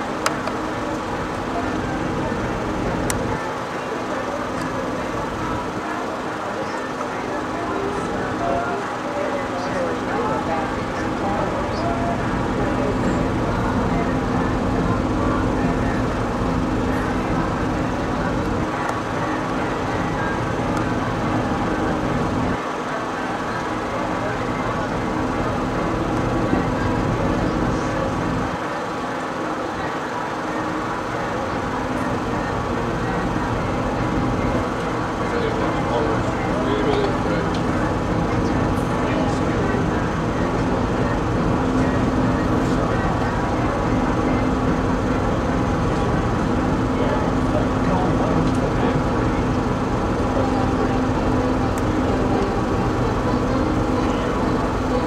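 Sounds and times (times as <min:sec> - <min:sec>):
boat engine humming: 0:00.0 - 0:55.0.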